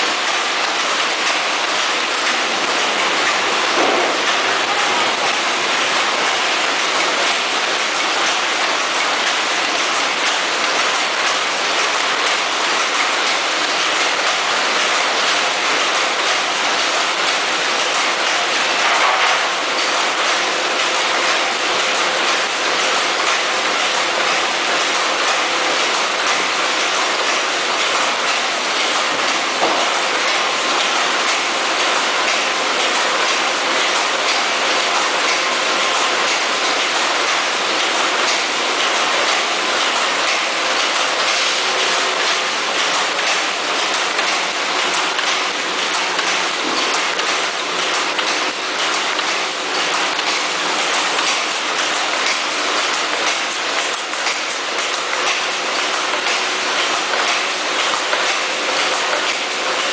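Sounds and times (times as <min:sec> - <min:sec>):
packaging machines clattering: 0:00.0 - 0:59.9.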